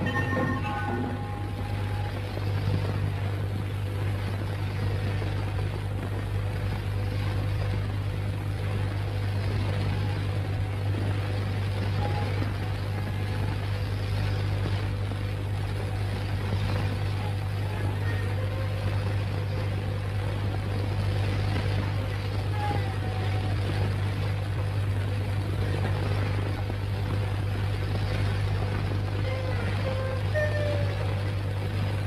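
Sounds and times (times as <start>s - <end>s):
faint musical note: 0.0s - 2.3s
film soundtrack hum and hiss: 0.0s - 32.0s.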